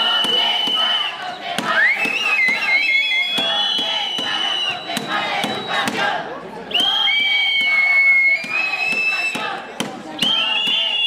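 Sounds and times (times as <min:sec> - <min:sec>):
sharp claps: 0:00.0 - 0:06.1
crowd shouting and cheering: 0:00.0 - 0:11.0.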